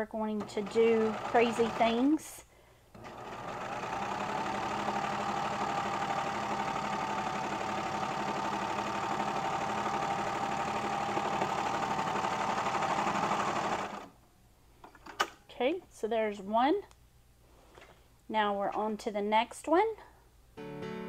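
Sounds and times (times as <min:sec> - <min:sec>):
serger machine stitching: 0:00.3 - 0:02.1, 0:02.9 - 0:14.1.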